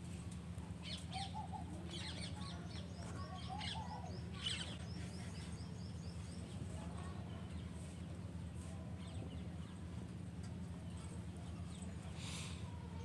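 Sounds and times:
steady low hum: 0.0s - 13.0s
faint birds chirping: 0.5s - 13.0s.

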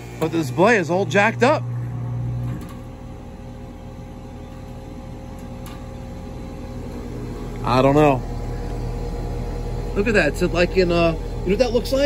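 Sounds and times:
deeper hum: 0.0s - 12.0s
pool equipment humming: 0.0s - 12.0s.

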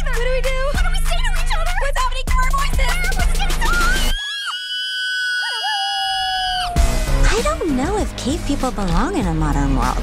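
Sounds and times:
cartoon girls screaming: 3.7s - 6.9s
lower voice wobbling scream: 4.1s - 6.9s.

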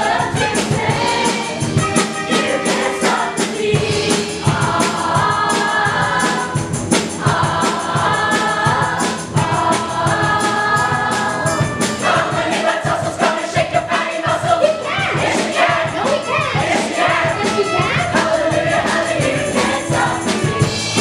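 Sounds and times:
ensemble singing show tune: 0.0s - 21.0s.

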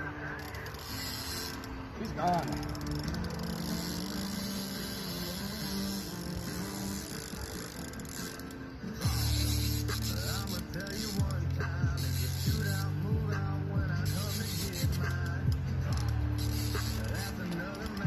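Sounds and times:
music with held low notes: 0.0s - 18.0s.

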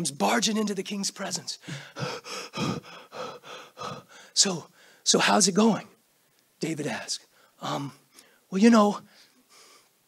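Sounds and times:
man panting: 1.6s - 4.3s.

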